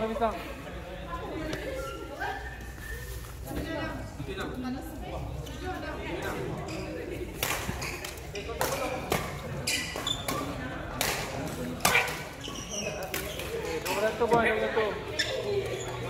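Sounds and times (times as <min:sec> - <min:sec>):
rackets hitting shuttlecock: 0:07.4 - 0:12.3.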